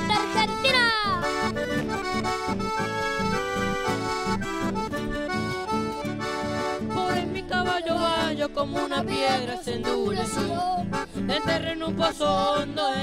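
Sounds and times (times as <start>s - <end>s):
accordion melody: 0.0s - 13.0s
rhythmic acoustic guitar: 0.0s - 13.0s.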